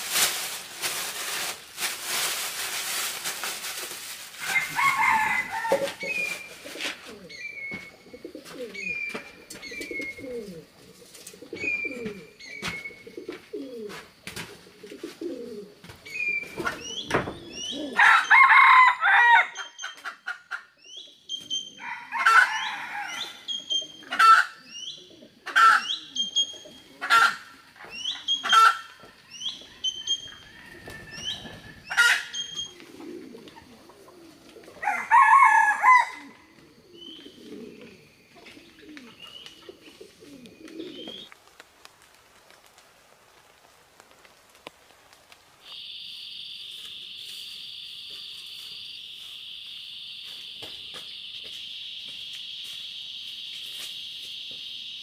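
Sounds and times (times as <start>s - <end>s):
rooster crowing: 4.4s - 6.1s, 18.0s - 19.6s, 21.8s - 23.5s, 29.0s - 32.4s, 34.8s - 36.4s
high-pitched insect drone: 45.7s - 55.0s.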